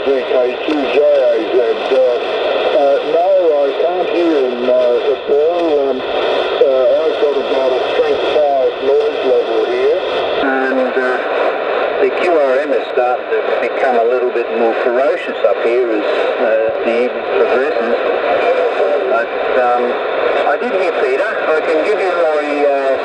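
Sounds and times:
distant radio voice through speaker: 0:00.0 - 0:02.2, 0:02.8 - 0:06.0, 0:06.6 - 0:11.3, 0:12.0 - 0:23.0
radio band noise: 0:00.0 - 0:23.0.

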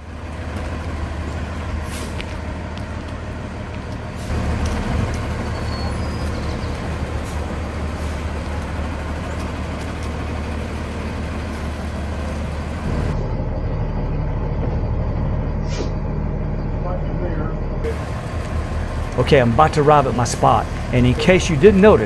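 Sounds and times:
engine hum inside cab: 0:00.0 - 0:22.0
motorhome engine droning: 0:00.0 - 0:22.0.

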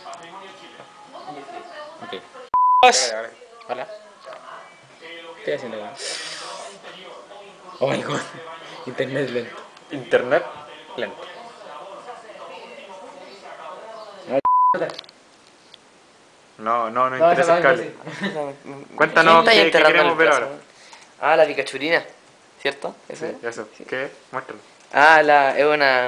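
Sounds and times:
censor bleep tone: 0:02.6 - 0:03.0, 0:14.4 - 0:14.8.

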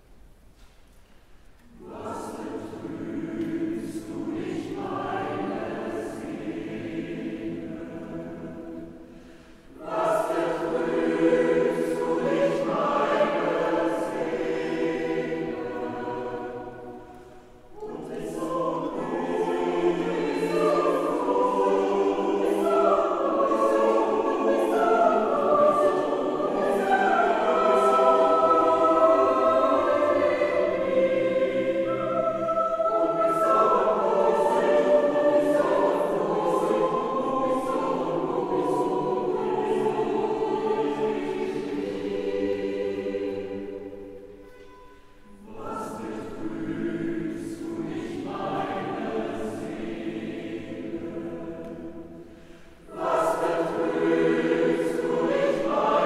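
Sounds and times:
mixed choir singing a cappella: 0:01.6 - 0:56.0.

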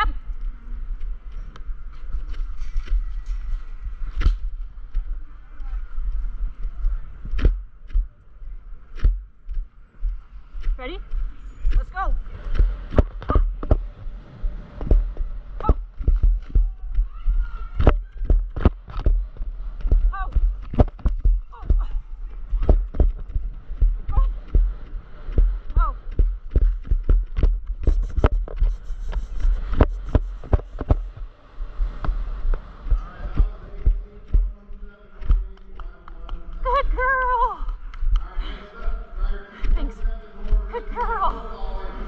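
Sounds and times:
low rumble: 0:00.0 - 0:42.0
horse hoofbeats galloping: 0:09.0 - 0:41.7.

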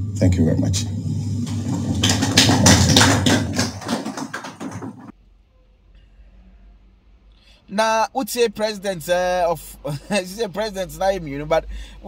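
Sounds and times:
audience applauding: 0:00.9 - 0:05.1.

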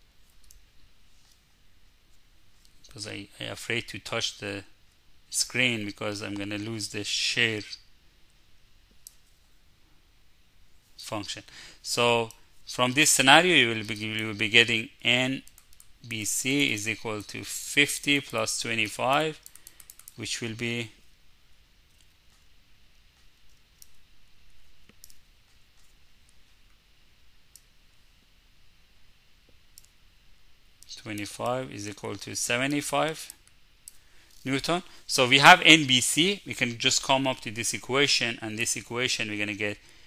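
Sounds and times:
low steady hum: 0:00.0 - 0:40.0.

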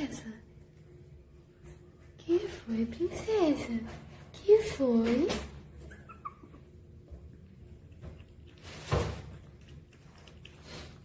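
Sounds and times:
puppy whimpering: 0:05.7 - 0:06.9.

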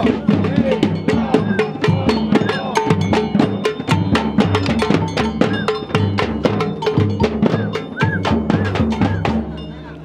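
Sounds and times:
snare drums beating: 0:00.0 - 0:09.6.

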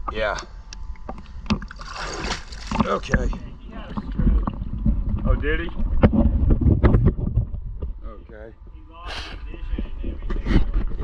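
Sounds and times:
low rumble of water: 0:00.0 - 0:08.8
water sloshing and splashing: 0:00.8 - 0:07.2.

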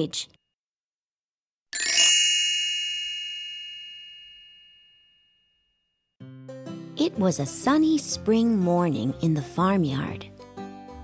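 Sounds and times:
bright chime ringing: 0:01.8 - 0:05.6.

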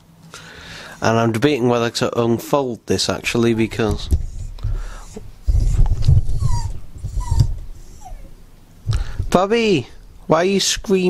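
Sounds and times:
handling noise rumble: 0:03.1 - 0:11.0
small dog whining: 0:04.3 - 0:08.5.

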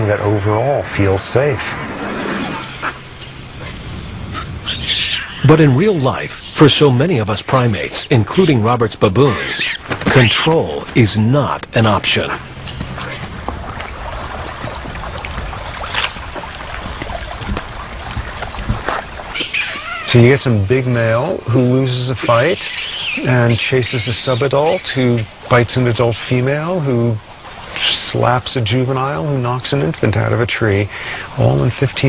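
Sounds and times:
steady high hiss: 0:00.0 - 0:32.0
wind rumble on microphone: 0:00.8 - 0:06.6, 0:12.3 - 0:19.4
baboons calling: 0:01.8 - 0:07.2, 0:07.8 - 0:10.8, 0:11.6 - 0:20.4, 0:21.5 - 0:25.3.

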